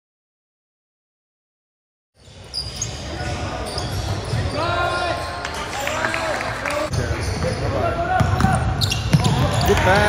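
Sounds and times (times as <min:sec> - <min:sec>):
players' voices: 0:02.6 - 0:10.0.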